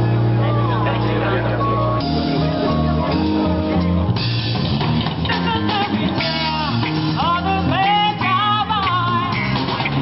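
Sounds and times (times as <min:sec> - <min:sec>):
low bass note: 0:00.0 - 0:05.2
live funk band: 0:00.0 - 0:10.0
person singing: 0:05.3 - 0:09.5.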